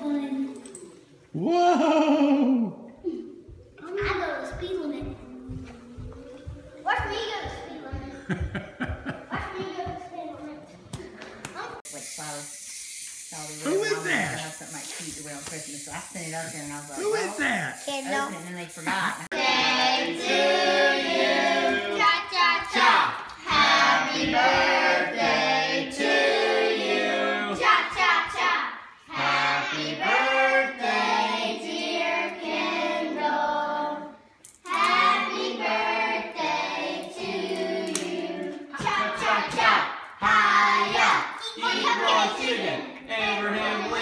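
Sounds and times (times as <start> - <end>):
steady hiss: 11.9 - 21.9
children singing together: 19.3 - 44.0.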